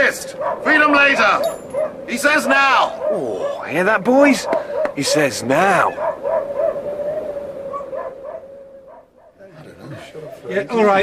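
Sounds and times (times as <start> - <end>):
huskies whining and howling: 0.0 - 11.0
dog yelps: 0.3 - 9.4.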